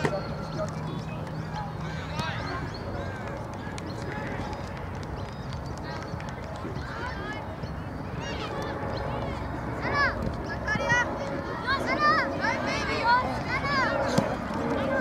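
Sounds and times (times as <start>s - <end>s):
steady background noise: 0.0s - 15.0s.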